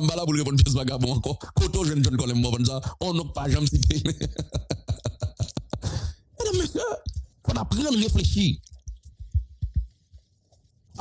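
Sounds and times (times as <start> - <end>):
soft low thumps: 8.8 - 10.3.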